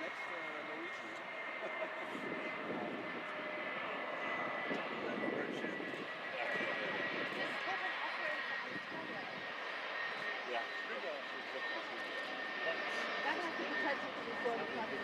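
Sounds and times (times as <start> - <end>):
jet engines whining: 0.0 - 15.0.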